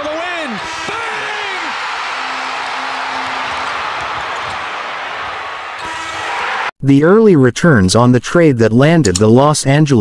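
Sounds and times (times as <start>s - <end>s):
crowd cheering: 0.0s - 6.8s.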